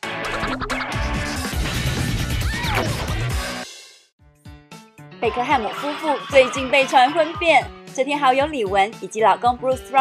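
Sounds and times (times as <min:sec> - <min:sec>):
loud jingle music: 0:05.2 - 0:08.9.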